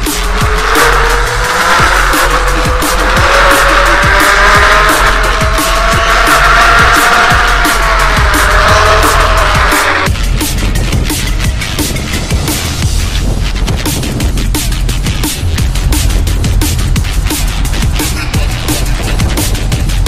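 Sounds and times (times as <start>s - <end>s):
drum and bass music: 0.0s - 20.0s
electric hub motor whining: 0.0s - 20.0s.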